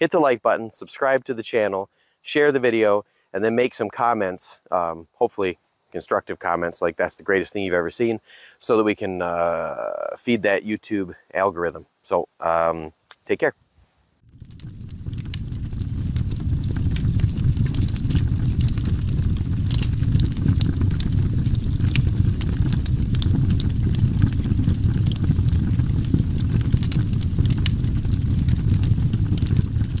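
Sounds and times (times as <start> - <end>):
dense irregular crackling: 14.3 - 30.0
steady low rumble: 14.3 - 30.0.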